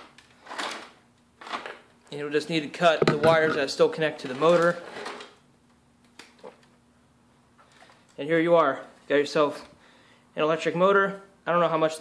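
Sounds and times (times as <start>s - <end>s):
handling sounds: 3.0s - 3.7s.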